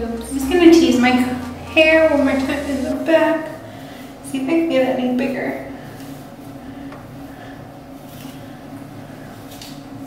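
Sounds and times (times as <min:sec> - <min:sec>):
low hum: 0:00.0 - 0:09.5.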